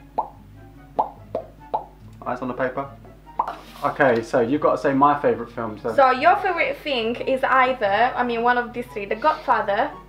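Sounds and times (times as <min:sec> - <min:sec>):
low steady hum: 0:00.0 - 0:10.0
playful bubbly background music: 0:00.0 - 0:10.0.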